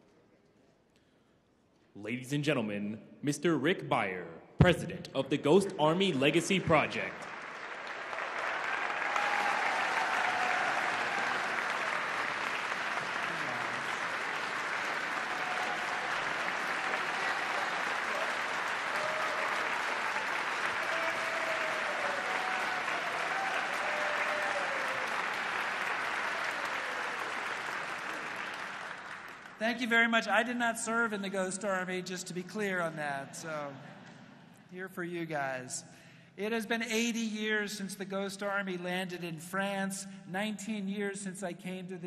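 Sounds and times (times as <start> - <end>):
large audience applauding: 6.3 - 30.4.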